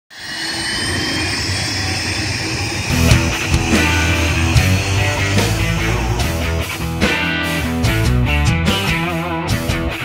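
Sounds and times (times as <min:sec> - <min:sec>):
jet turbine whine: 0:00.1 - 0:07.9
rock music with drums and guitar: 0:02.8 - 0:10.0.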